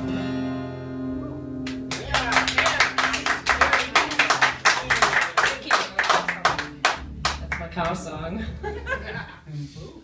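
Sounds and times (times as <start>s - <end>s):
acoustic guitar chord ringing: 0.0s - 4.6s
audience applause: 1.7s - 8.0s.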